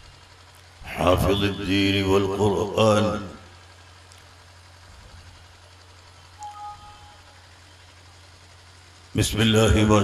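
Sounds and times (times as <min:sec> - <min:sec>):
low electrical hum: 0:00.0 - 0:10.0
faint sound system hiss: 0:03.0 - 0:09.6
brief faint pitched tone: 0:06.4 - 0:07.4.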